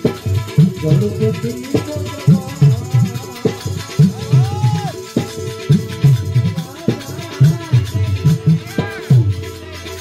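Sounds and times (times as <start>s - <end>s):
barrel drum beating quick rhythm: 0.0s - 10.0s.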